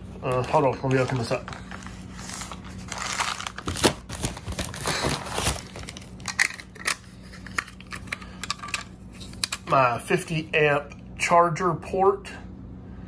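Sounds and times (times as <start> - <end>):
plastic bag crinkling and tearing: 0.2 - 7.0.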